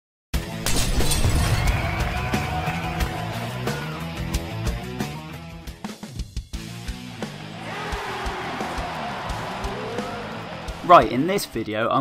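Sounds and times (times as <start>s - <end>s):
music: 0.3s - 12.0s
shattering crash: 0.6s - 2.6s.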